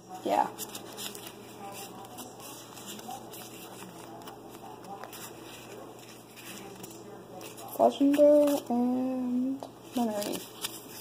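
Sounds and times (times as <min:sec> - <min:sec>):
trading cards rustling: 0:00.2 - 0:08.9, 0:09.8 - 0:11.0
cards ticking and snapping: 0:09.9 - 0:11.0.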